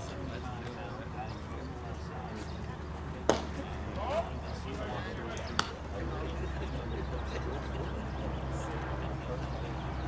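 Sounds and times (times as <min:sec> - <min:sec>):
voices: 0:00.0 - 0:10.0
baseball smacking into leather mitt: 0:03.3 - 0:03.5.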